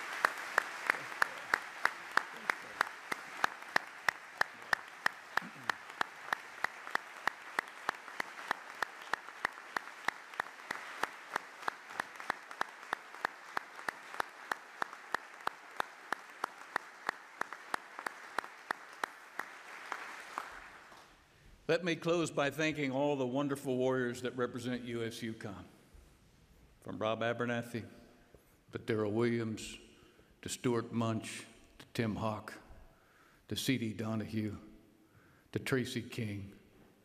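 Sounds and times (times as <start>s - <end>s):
audience applauding: 0.0s - 21.2s
sharp evenly spaced claps: 0.0s - 21.2s.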